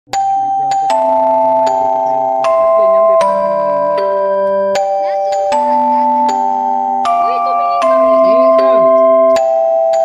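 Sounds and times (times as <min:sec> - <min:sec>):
chime-like melody: 0:00.1 - 0:10.0.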